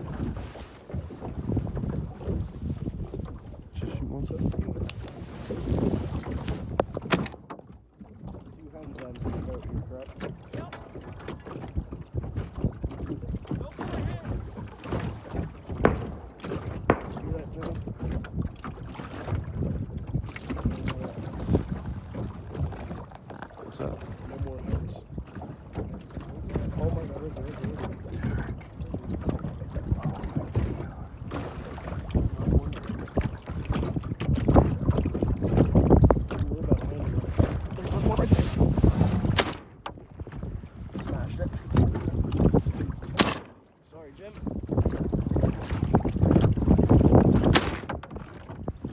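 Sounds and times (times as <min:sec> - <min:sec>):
waves lapping against hull: 0:00.0 - 0:48.9
wind rumbling on microphone: 0:00.0 - 0:48.9
sharp knocks: 0:15.7 - 0:18.1.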